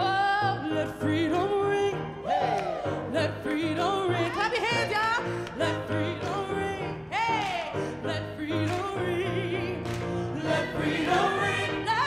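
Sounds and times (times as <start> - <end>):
choir singing: 8.1 - 12.0.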